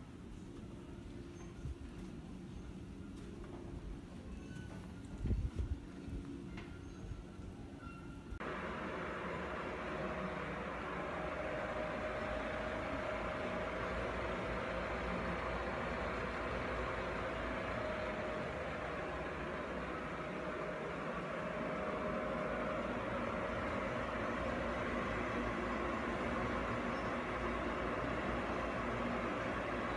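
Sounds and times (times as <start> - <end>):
thin steady whine: 0.0 - 29.9.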